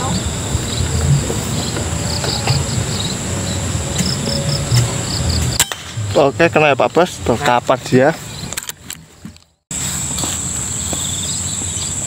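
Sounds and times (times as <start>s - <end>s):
crickets chirping: 0.0s - 12.0s
high insect hum: 0.0s - 12.0s
low rumble of wind: 0.0s - 12.0s
air rifle shot: 5.6s - 6.2s.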